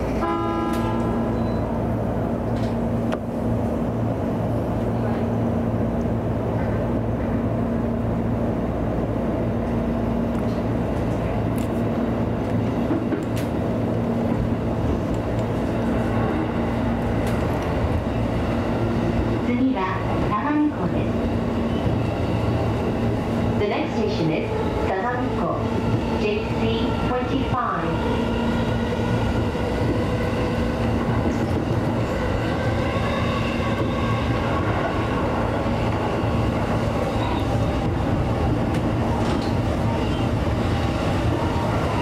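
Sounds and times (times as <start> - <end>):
train rumble: 0.0 - 42.0.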